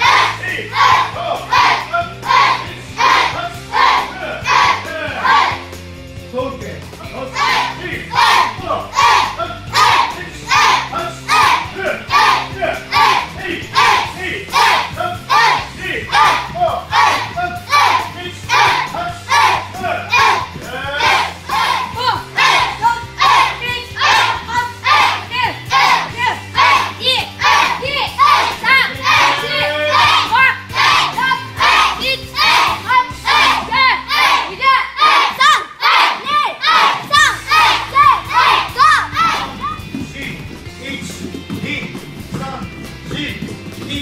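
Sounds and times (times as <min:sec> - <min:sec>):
children shouting in unison: 0:00.0 - 0:05.6, 0:07.4 - 0:39.8.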